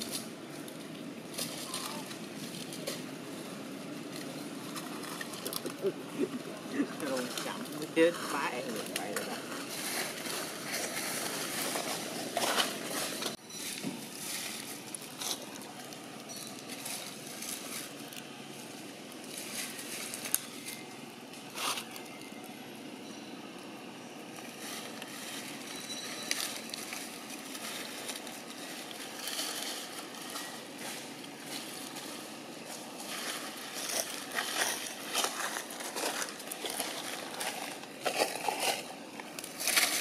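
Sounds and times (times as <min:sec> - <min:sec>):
dry leaves rustling and crackling: 0:00.0 - 0:22.7, 0:24.0 - 0:40.0
steady outdoor hiss: 0:00.0 - 0:40.0.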